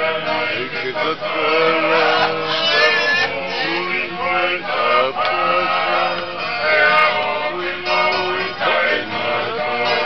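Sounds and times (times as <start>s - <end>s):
men singing with music: 0.0s - 10.0s.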